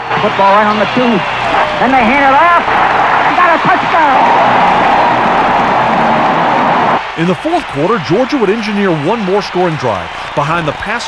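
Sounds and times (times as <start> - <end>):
stadium crowd cheering on radio: 0.0 - 11.0.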